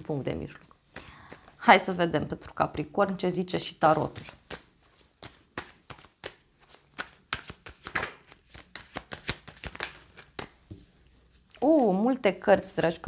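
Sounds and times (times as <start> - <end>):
cards being shuffled: 3.8 - 13.0
cards slapping on a table: 4.1 - 10.8.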